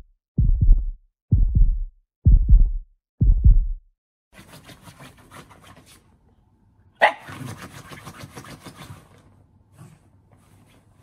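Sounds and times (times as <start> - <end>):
deep electronic thumps: 0.0 - 3.9.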